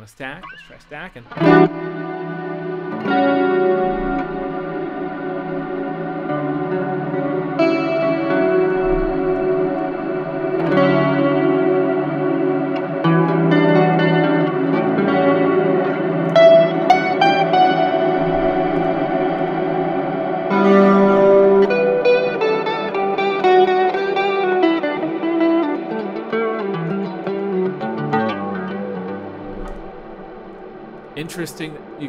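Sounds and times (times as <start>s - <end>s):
clean electric guitar with long reverb: 1.2s - 32.0s.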